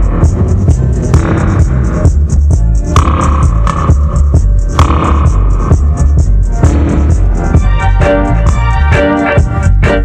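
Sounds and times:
deep heavy bass line: 0:00.0 - 0:10.0
hi-hat pattern: 0:00.0 - 0:10.0.

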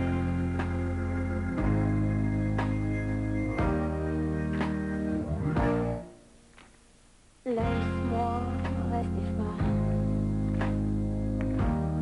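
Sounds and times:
electric bass guitar notes: 0:00.0 - 0:06.1, 0:07.6 - 0:12.0
live band music: 0:00.0 - 0:06.1.

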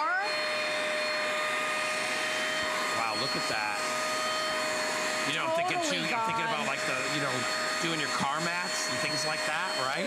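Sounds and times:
spot cleaner suction motor whine: 0:00.0 - 0:10.0.

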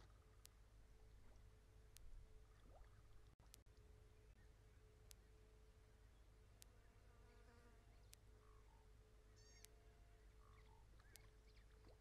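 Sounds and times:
faint chirping calls: 0:00.0 - 0:12.0
steady low hum: 0:00.0 - 0:12.0.

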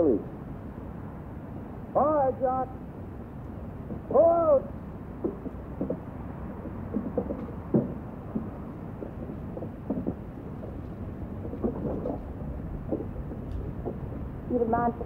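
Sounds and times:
muffled television soundtrack rumble: 0:00.0 - 0:00.4, 0:01.8 - 0:15.0
faint indistinct sounds: 0:00.0 - 0:15.0.

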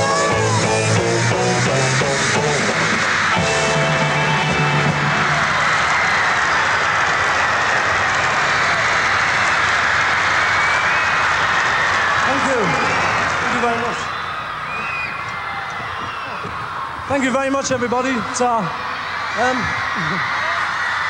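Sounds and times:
rock band playing: 0:00.0 - 0:06.2
crowd screaming and cheering: 0:00.0 - 0:21.0.

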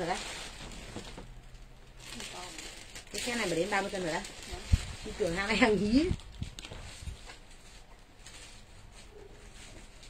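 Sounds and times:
plastic packaging rustling: 0:00.0 - 0:10.0.

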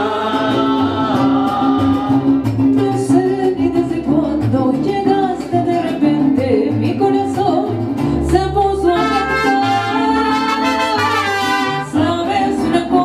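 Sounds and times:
mariachi band playing and singing: 0:00.0 - 0:13.0.

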